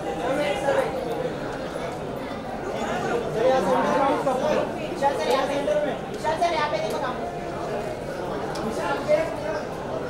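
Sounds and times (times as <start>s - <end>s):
indistinct chatter of people: 0.0s - 10.0s.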